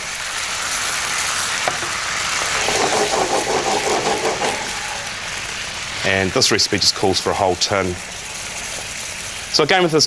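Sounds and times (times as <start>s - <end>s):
paste sizzling in frying pan: 0.0s - 10.0s
wooden spatula stirring: 2.4s - 4.9s.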